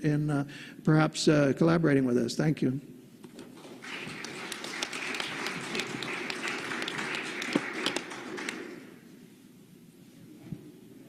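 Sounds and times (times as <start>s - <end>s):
audience applauding: 3.5s - 9.1s.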